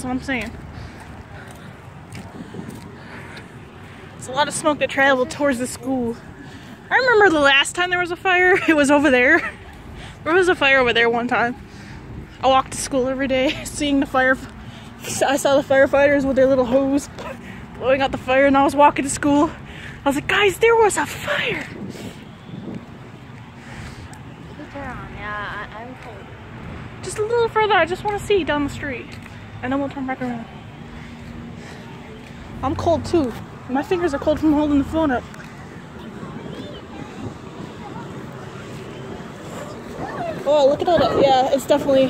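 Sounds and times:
wind rumbling on microphone: 0.0 - 4.9, 20.2 - 27.3, 34.7 - 42.0
street background noise: 0.0 - 42.0.

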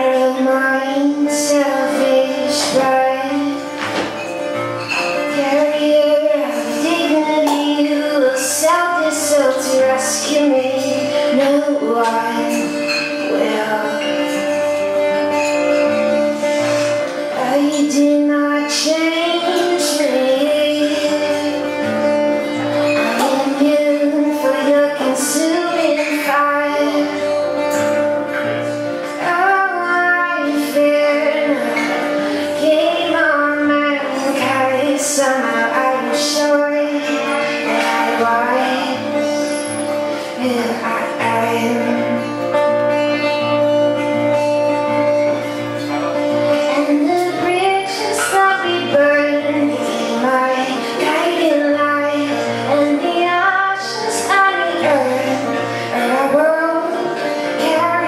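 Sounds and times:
acoustic guitar: 0.0 - 58.0
woman singing: 0.0 - 58.0.

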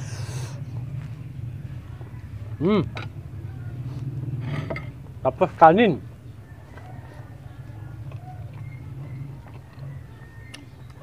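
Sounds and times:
steady low hum: 0.0 - 11.0
man chewing food: 6.7 - 11.0.

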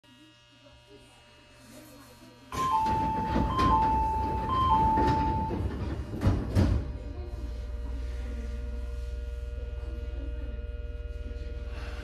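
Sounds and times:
train electrical hum: 2.2 - 12.0.

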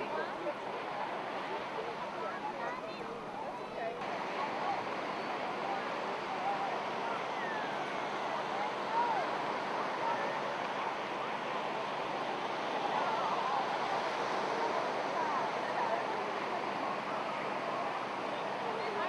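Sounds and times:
faint voices of people and children: 0.0 - 19.0
surf washing onto shore: 4.1 - 19.0.

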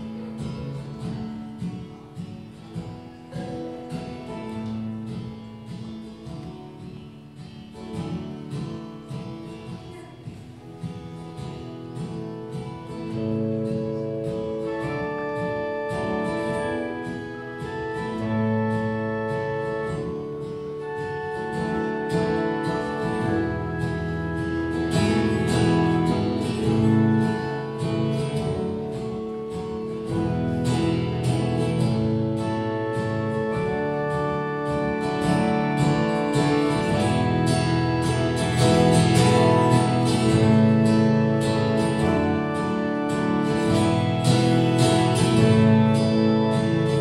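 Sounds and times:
acoustic guitar picking and strumming: 0.0 - 47.0
pipe organ chords: 12.0 - 47.0.

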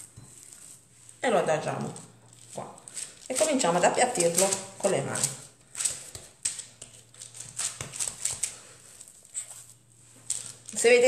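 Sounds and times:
woman speaking: 1.2 - 2.1, 3.3 - 5.4, 10.7 - 11.0
hands patting minced meat: 2.6 - 8.7.

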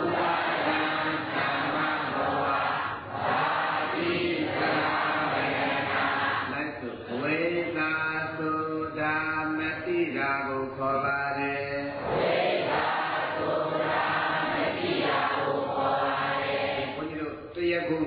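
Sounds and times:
devotional chanting: 0.0 - 18.0.

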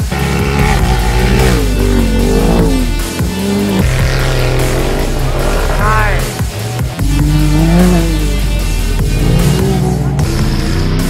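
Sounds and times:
background music: 0.0 - 11.0
off-road engines revving: 0.0 - 11.0.

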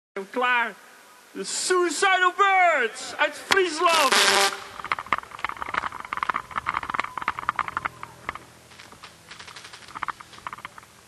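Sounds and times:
audience clapping: 4.8 - 10.8.

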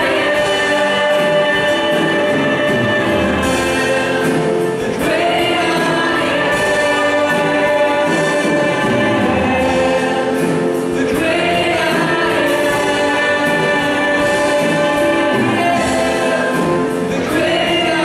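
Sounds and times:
acoustic guitar: 0.0 - 18.0
congregation singing: 0.0 - 18.0
keyboard: 0.0 - 18.0.

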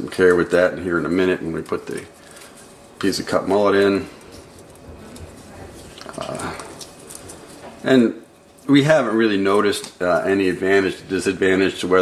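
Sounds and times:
faint handling noises: 0.0 - 12.0
low room hum: 0.0 - 12.0.

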